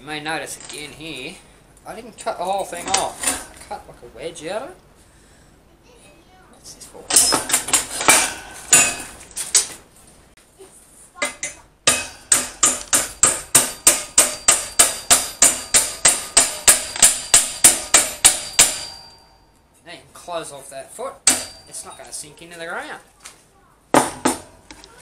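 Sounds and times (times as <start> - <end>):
hammer blows on steel: 11.9 - 19.4.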